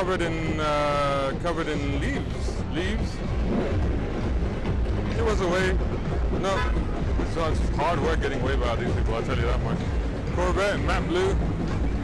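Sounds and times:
loud heavy bass music: 0.0s - 12.0s.

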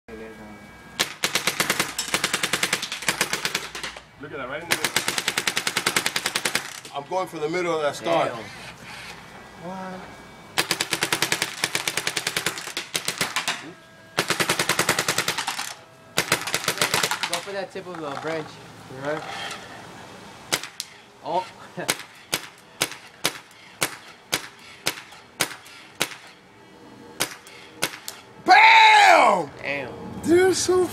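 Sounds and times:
paintball marker rapid fire: 1.0s - 4.0s, 4.7s - 6.9s, 10.6s - 13.6s, 14.2s - 17.5s, 20.5s - 20.9s, 21.8s - 26.4s, 27.2s - 28.2s.

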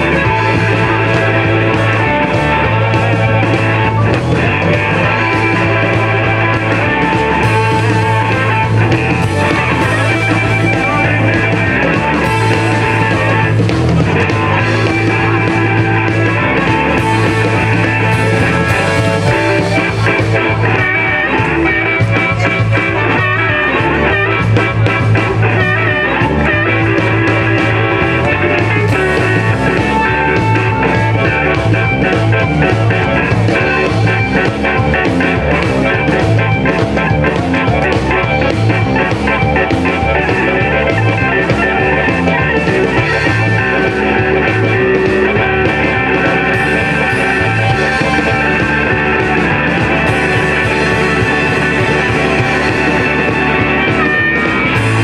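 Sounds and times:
bass guitar: 0.0s - 55.0s
drum kit steady beat: 0.0s - 55.0s
electric guitars: 0.0s - 55.0s.

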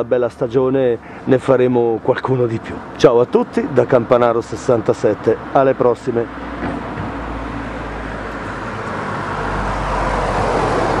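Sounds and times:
road traffic rush: 0.0s - 11.0s
vehicle approaching: 0.0s - 11.0s.

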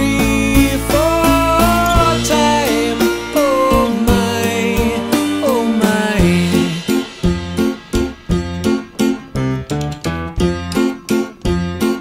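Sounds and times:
low bass: 0.0s - 10.8s
guitar strummed rhythmically: 0.0s - 12.0s.

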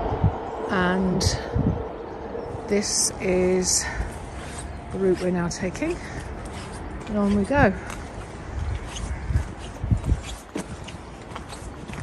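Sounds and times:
steady low rumble: 0.0s - 10.2s
footsteps on wet stony track: 3.6s - 12.0s.

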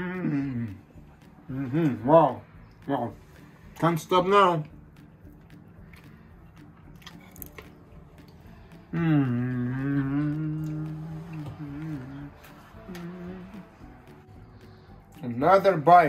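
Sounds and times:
man humming while eating: 0.0s - 2.0s, 8.7s - 14.1s.

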